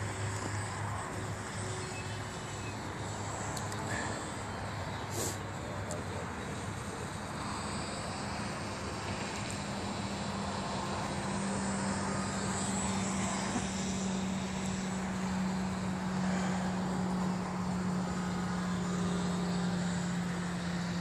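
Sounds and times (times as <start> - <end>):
model airplane motor and propeller: 0.0 - 21.0.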